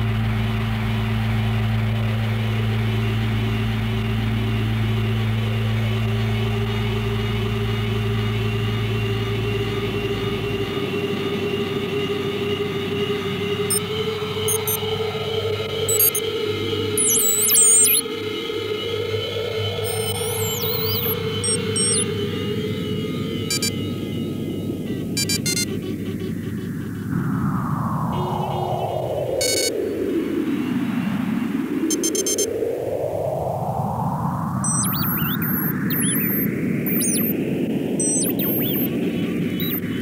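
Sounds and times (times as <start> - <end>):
electronic drone: 0.0 - 40.0
filtered noise sweeping upward: 0.0 - 40.0
high oscillator tones swooping: 14.5 - 14.8, 15.9 - 16.2, 17.0 - 18.0, 19.8 - 22.0, 27.2 - 30.1, 31.9 - 32.5, 34.6 - 37.4, 38.0 - 39.0, 39.6 - 40.0
warbling pitch glides: 17.0 - 18.0, 19.9 - 22.0, 34.6 - 37.4, 38.0 - 38.9.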